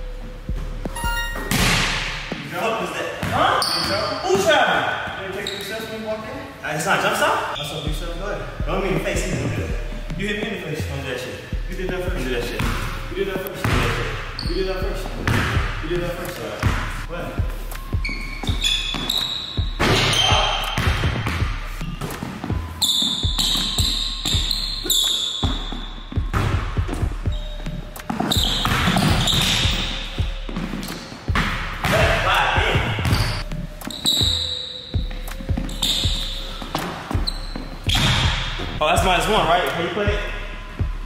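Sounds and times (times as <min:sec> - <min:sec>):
sneakers squeaking: 0:00.0 - 0:02.5, 0:03.1 - 0:06.0, 0:08.8 - 0:38.8
basketball bouncing on wooden floor: 0:25.4 - 0:27.4.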